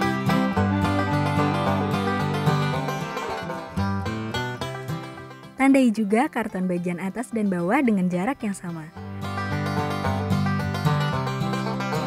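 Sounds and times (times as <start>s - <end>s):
bluegrass banjo music: 0.0s - 12.0s.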